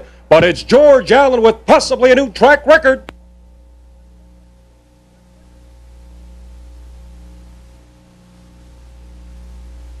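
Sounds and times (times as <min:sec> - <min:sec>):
electrical mains hum: 0:00.0 - 0:10.0
faint hiss: 0:02.8 - 0:10.0.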